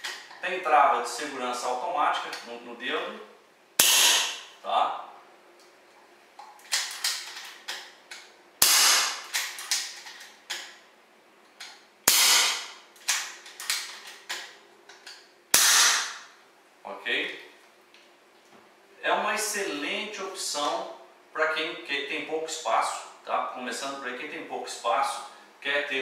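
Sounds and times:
air pistol shots: 3.8 - 4.5, 8.6 - 10.0, 12.0 - 13.9, 15.5 - 16.3.

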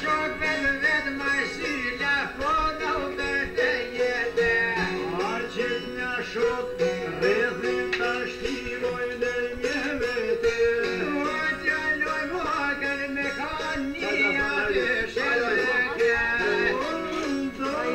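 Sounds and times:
plucked lutes playing folk tune: 0.0 - 17.9.

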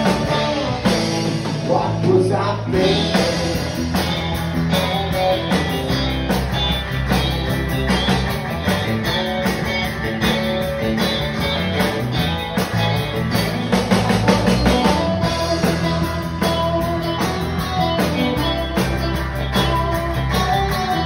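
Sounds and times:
drum kit beat: 0.0 - 21.0
electric and acoustic guitars: 0.0 - 21.0
electric bass: 0.0 - 21.0.

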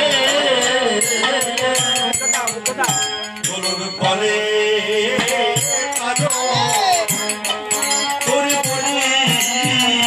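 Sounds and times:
devotional singing: 0.0 - 10.0
harmonium: 0.0 - 10.0
percussion strikes: 0.0 - 10.0.

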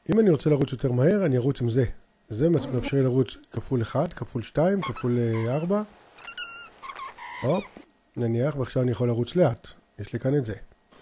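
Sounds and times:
cats chirping and meowing: 4.8 - 7.8.

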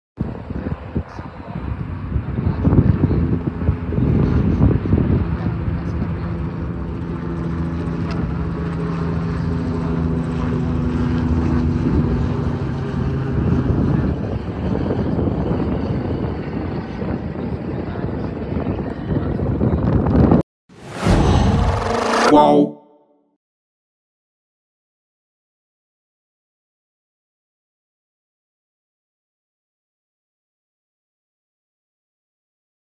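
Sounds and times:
jet engines roaring at takeoff: 0.2 - 20.0.

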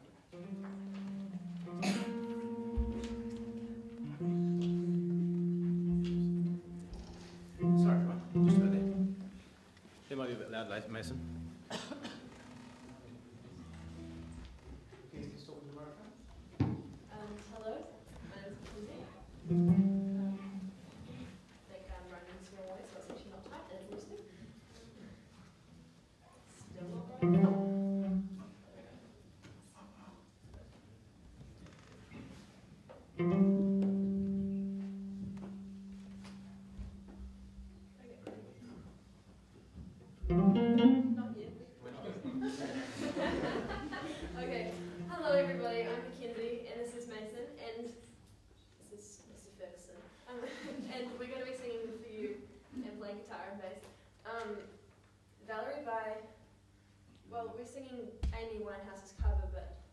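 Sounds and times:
electric guitar strings plucked: 0.3 - 9.4, 11.0 - 14.6, 19.4 - 20.8, 27.1 - 28.5, 33.2 - 38.0, 40.2 - 41.4, 44.3 - 46.3.

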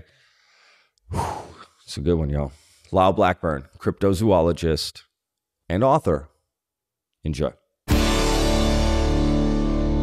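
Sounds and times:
man breathing into microphone: 0.0 - 1.9, 2.5 - 2.9.

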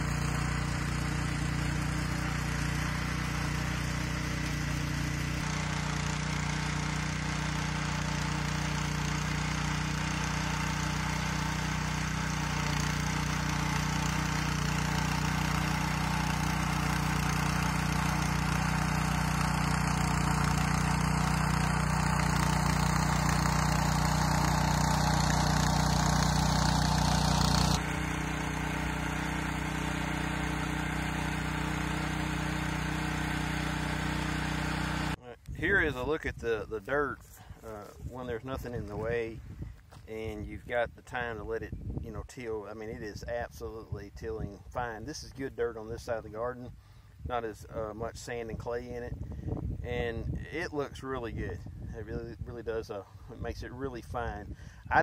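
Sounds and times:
tiller engine running: 0.0 - 35.2
tines churning soil: 0.0 - 35.2, 52.1 - 55.0.

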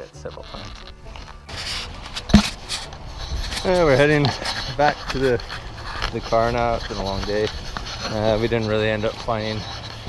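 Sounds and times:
camera handling scraping and rustling: 0.0 - 10.0.

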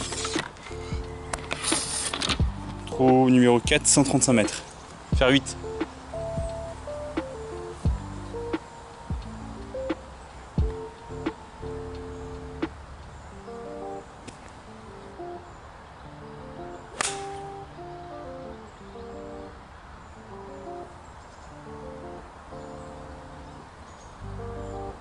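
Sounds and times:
background music with plucked notes: 0.0 - 25.0
golf club striking ball: 16.9 - 17.6.

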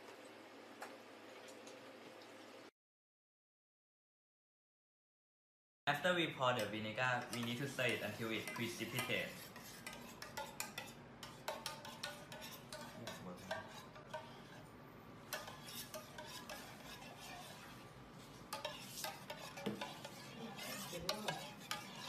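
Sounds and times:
spoon clinking and scraping pot: 6.6 - 22.0.

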